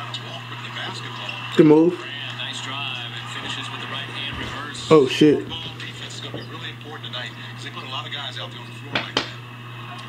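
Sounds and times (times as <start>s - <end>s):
arena crowd noise: 0.0s - 10.0s
low electrical hum: 0.0s - 10.0s
commentator talking: 0.2s - 9.4s.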